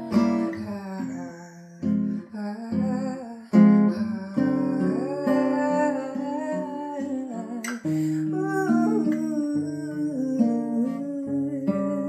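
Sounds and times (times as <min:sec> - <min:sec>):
acoustic guitar chords: 0:00.0 - 0:12.0
woman humming a melody: 0:00.0 - 0:12.0.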